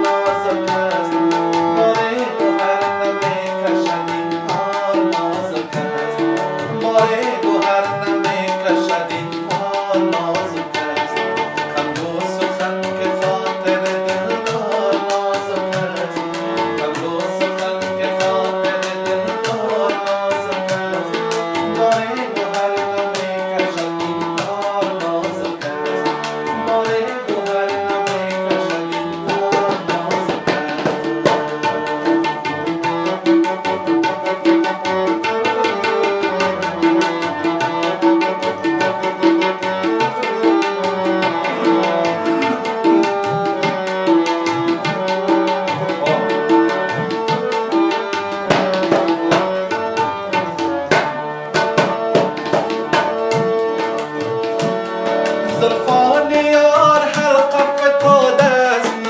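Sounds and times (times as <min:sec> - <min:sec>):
harmonium melody: 0:00.0 - 0:59.0
tabla drums beating: 0:00.0 - 0:59.0.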